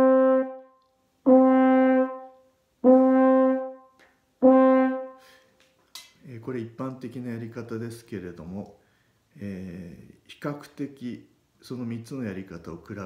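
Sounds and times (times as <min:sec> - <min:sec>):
french horn held notes: 0:00.0 - 0:05.4
player breathing in: 0:05.2 - 0:05.6.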